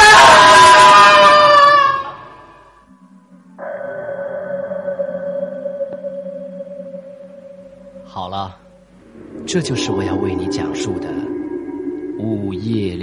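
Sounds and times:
eerie horror drone: 0.0s - 13.0s.

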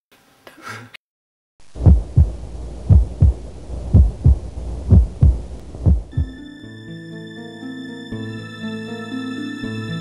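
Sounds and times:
low steady hum: 1.6s - 6.5s
heartbeat thumps: 1.7s - 6.4s.

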